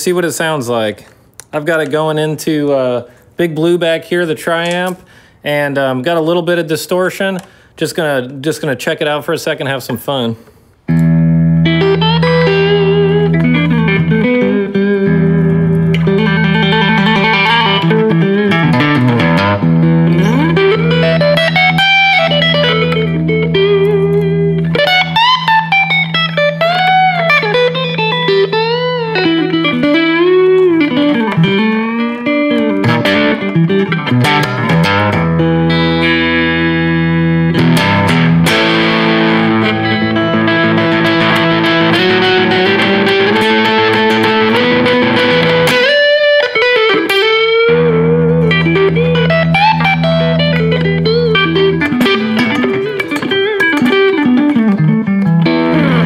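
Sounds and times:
distorted electric guitar: 10.8s - 56.0s.

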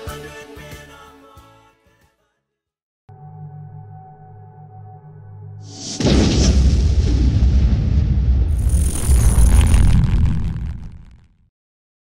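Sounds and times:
deep rumbling boom: 6.0s - 11.3s.

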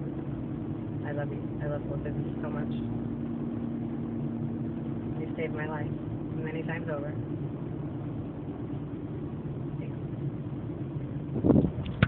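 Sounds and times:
car engine and tyres rumble: 0.0s - 12.0s.

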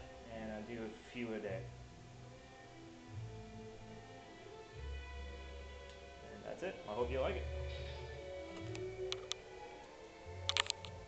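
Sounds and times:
soundtrack music from tv: 0.0s - 11.0s
sharp clicks: 8.5s - 9.4s, 10.4s - 11.0s.

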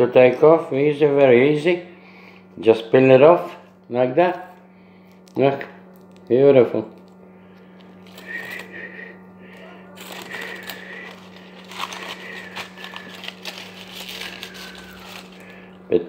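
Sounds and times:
low hum: 0.0s - 16.0s
aluminium foil crinkling and tearing: 7.8s - 8.8s, 9.5s - 15.8s.

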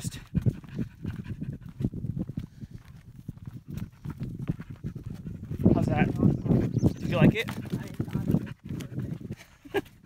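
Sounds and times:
footsteps on rocky dirt trail: 0.0s - 9.5s
dog panting: 0.0s - 10.0s.

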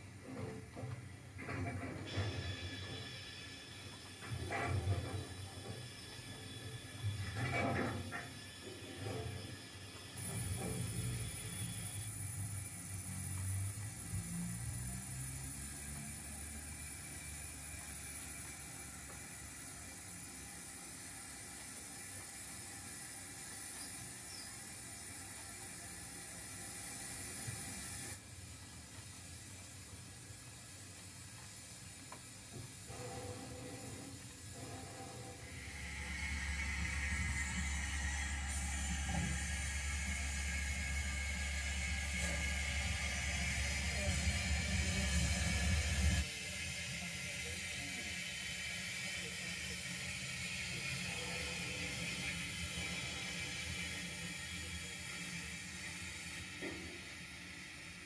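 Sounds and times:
model train wheels clicking: 0.0s - 58.0s
steady hiss: 0.0s - 58.0s.

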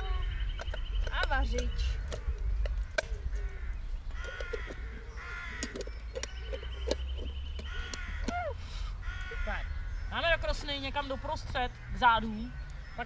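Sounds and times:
bird calls: 0.0s - 13.0s.

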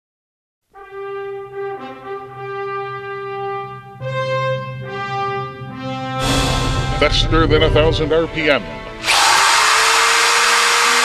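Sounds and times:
brass fanfare: 0.7s - 11.0s.

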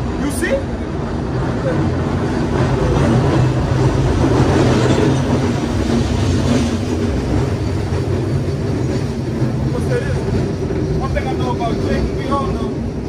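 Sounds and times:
streetcar rumbling on rails: 0.0s - 13.0s.

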